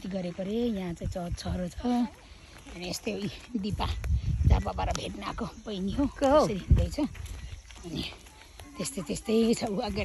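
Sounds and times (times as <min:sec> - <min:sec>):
people talking: 0:00.0 - 0:10.0
wind rumble on microphone: 0:00.1 - 0:02.1, 0:03.0 - 0:08.1.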